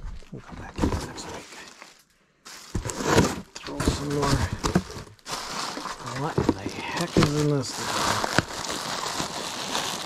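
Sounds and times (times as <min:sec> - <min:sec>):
plastic bag rustling: 0:00.7 - 0:10.0.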